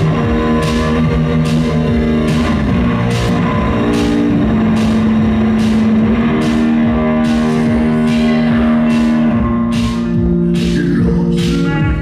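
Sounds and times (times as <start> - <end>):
electric bass guitar: 0.0 - 12.0
rock band playing: 0.0 - 12.0.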